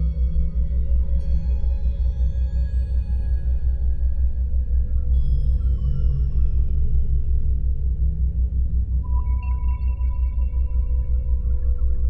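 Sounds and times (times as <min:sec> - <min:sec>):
ambient electronic music: 0:00.0 - 0:12.0.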